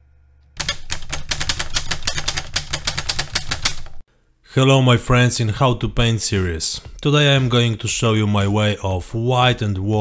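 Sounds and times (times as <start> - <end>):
low hum: 0.0 - 0.6
rapid sharp clicks: 0.6 - 4.0.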